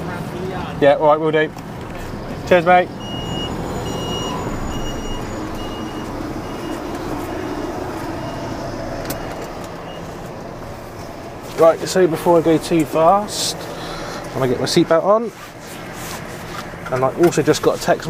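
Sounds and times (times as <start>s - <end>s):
diesel engine rumbling: 0.0s - 18.0s
vehicle reversing alarm beeping: 2.9s - 10.4s.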